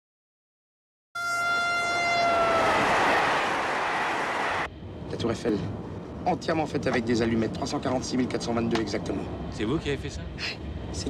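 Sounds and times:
train horn: 0:01.2 - 0:04.7
train rushing past on rails: 0:02.1 - 0:11.0.

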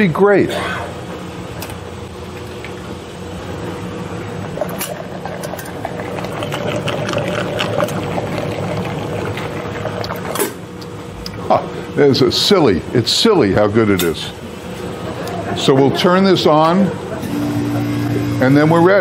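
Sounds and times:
machinery humming: 0:00.0 - 0:19.0.

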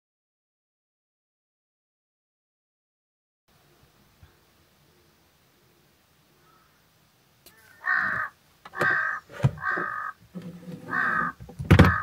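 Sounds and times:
crows cawing: 0:06.4 - 0:06.9, 0:07.5 - 0:10.2, 0:10.8 - 0:12.0.

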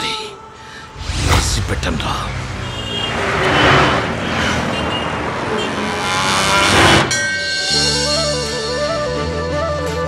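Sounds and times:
road traffic: 0:00.1 - 0:08.6
rushing sound: 0:00.8 - 0:05.6.

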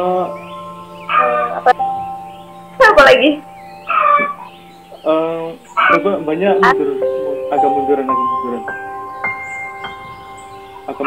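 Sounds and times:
music with sustained notes: 0:00.0 - 0:11.0.

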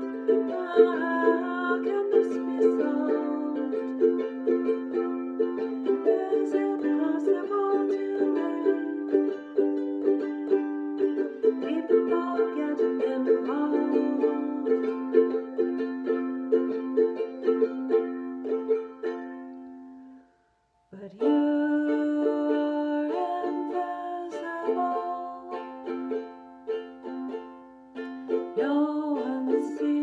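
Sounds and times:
woman singing slow song: 0:00.0 - 0:04.9, 0:05.8 - 0:09.6, 0:11.5 - 0:15.2, 0:20.9 - 0:26.0, 0:28.4 - 0:30.0
strummed string accompaniment: 0:00.0 - 0:30.0.

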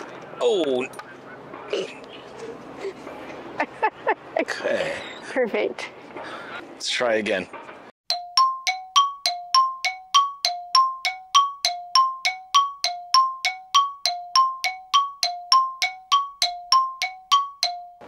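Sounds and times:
two-note chime dinging: 0:08.1 - 0:18.0.

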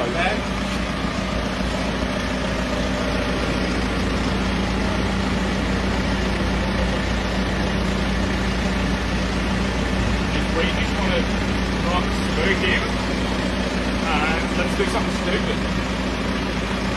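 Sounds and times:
mechanical drone with low hum: 0:00.0 - 0:16.9.

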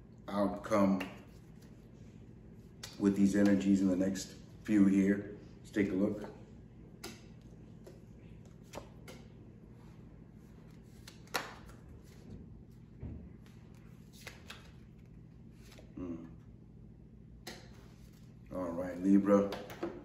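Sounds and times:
low steady hum: 0:00.0 - 0:20.0
cards being shuffled: 0:07.0 - 0:09.4, 0:10.4 - 0:12.3, 0:13.4 - 0:15.9, 0:17.4 - 0:18.4.

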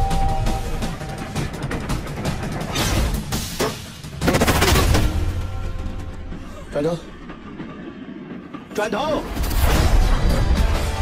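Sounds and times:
film soundtrack music: 0:00.0 - 0:11.0
moving train rumble and clatter: 0:00.1 - 0:11.0.

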